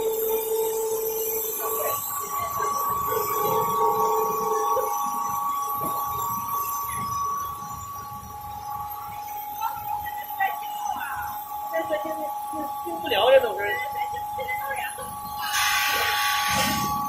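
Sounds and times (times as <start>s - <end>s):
machine whining tones: 0.0s - 17.0s.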